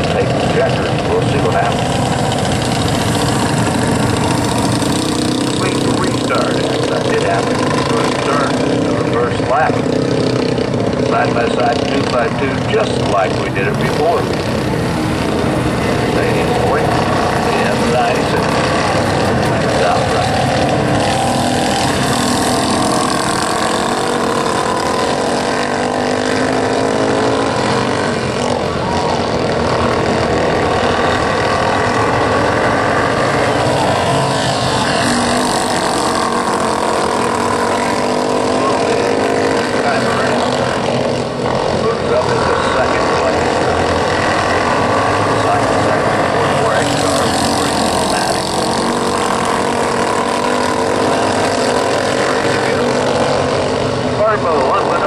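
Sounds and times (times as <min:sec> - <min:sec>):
small race car engines running: 0:00.0 - 0:55.0.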